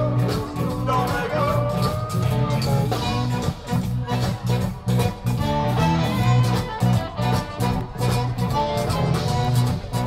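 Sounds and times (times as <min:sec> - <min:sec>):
accordion: 0:00.0 - 0:10.0
band playing live: 0:00.0 - 0:10.0.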